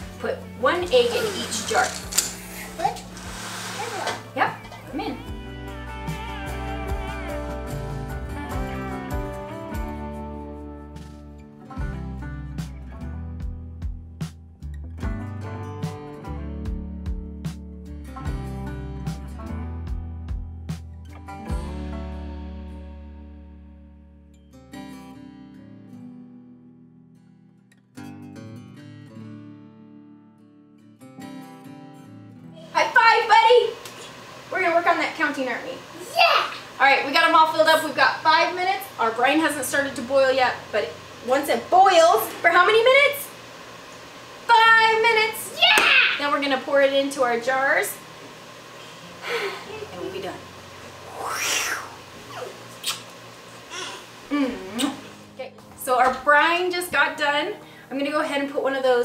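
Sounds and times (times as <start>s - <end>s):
soft background music: 0.0s - 24.2s, 54.4s - 59.0s
acoustic guitar chords strummed: 2.9s - 32.6s.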